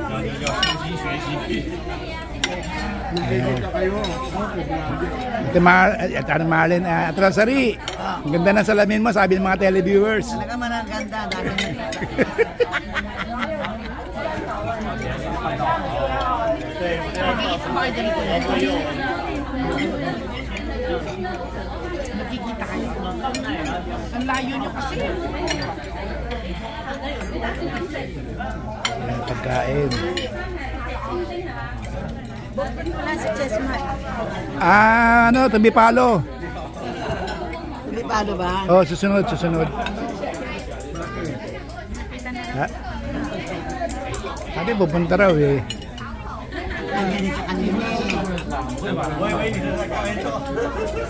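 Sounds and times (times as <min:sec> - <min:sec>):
chatter of diners: 0:00.0 - 0:51.0
people talking: 0:00.0 - 0:51.0
cutlery clinking on plates: 0:00.4 - 0:01.0.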